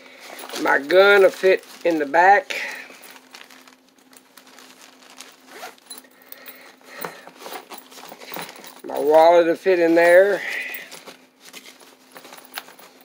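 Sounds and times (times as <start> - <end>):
fabric pack rustling: 0.0 - 13.0
zipper pulled open and shut: 5.3 - 6.1.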